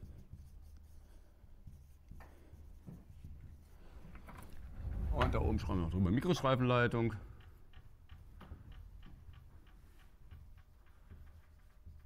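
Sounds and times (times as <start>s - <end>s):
marker writing on whiteboard: 0.0s - 4.3s, 7.4s - 12.0s.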